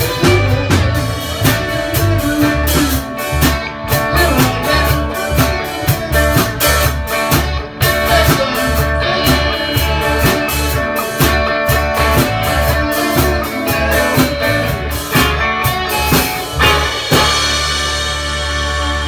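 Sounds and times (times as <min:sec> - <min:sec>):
blues electric guitar: 0:00.0 - 0:19.0
low bass line: 0:00.0 - 0:19.0
steady drum beat: 0:00.0 - 0:19.0.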